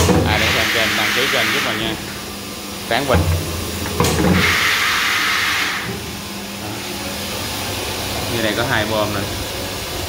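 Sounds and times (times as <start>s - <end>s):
low pump hum: 1.7s - 10.0s.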